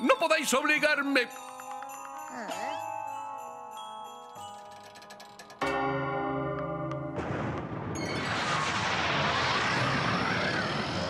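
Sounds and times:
loud rushing blast: 0:07.2 - 0:11.0.

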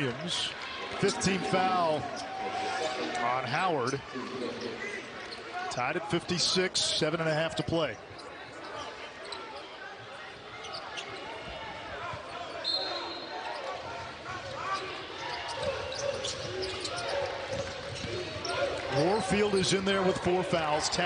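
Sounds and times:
arena crowd noise: 0:00.0 - 0:21.0.

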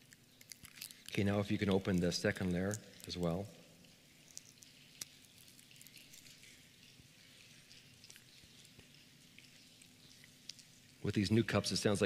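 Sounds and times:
plastic cups crackling: 0:00.0 - 0:12.0.

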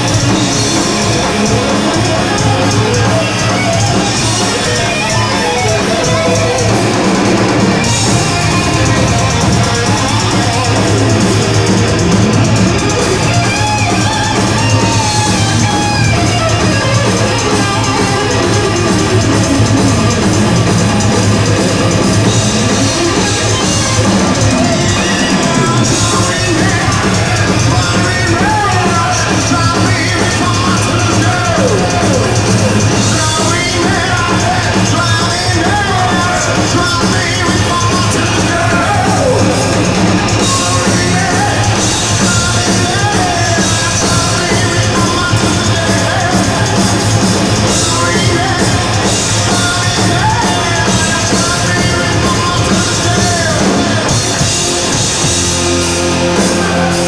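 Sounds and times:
electric guitar lead bending: 0:00.0 - 0:57.0
hard rock band playing live: 0:00.0 - 0:57.0.

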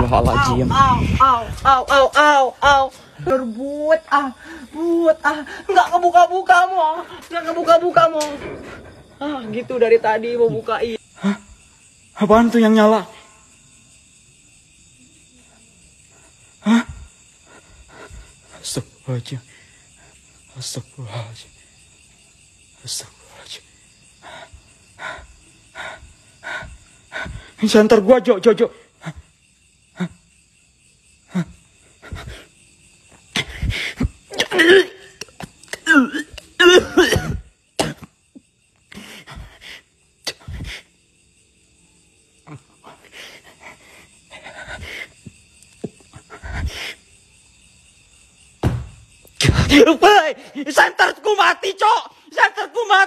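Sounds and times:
man breathing heavily: 0:24.2 - 0:27.6, 0:42.8 - 0:45.3.

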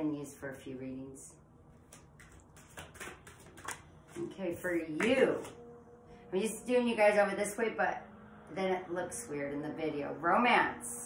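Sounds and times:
cards being shuffled: 0:01.8 - 0:04.3.

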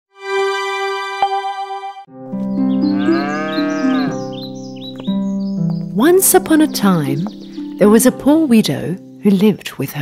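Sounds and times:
background music with held notes: 0:00.1 - 0:10.0
cow mooing: 0:02.8 - 0:04.3.

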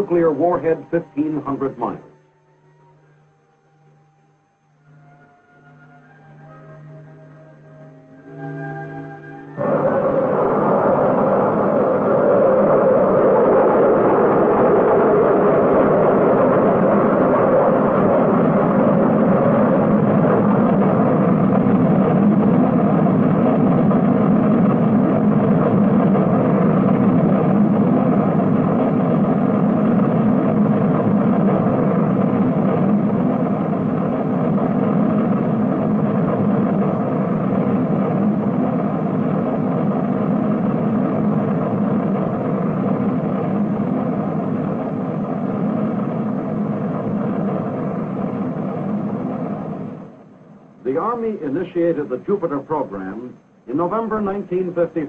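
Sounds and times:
rocket engine rumble: 0:00.0 - 0:02.2, 0:09.4 - 0:55.0.

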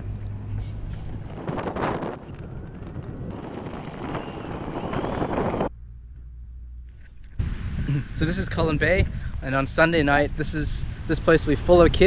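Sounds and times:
low hum: 0:00.0 - 0:11.1
wind buffeting microphone: 0:00.6 - 0:05.7.

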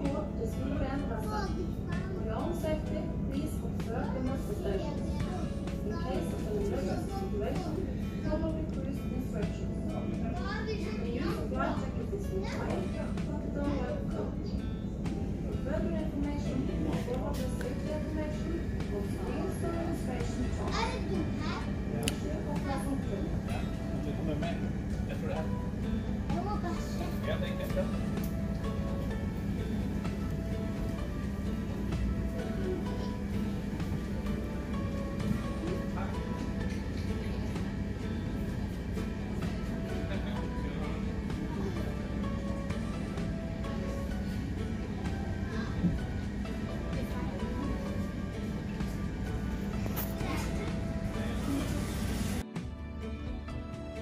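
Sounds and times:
ferry engines droning: 0:00.0 - 0:52.4
music: 0:00.0 - 0:54.0.

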